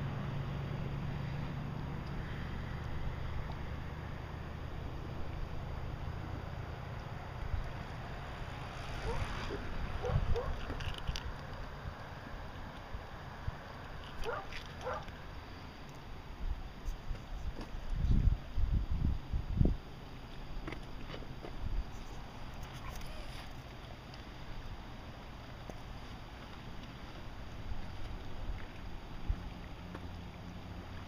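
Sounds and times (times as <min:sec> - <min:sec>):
wind buffeting microphone: 0:08.8 - 0:11.4, 0:16.5 - 0:19.9.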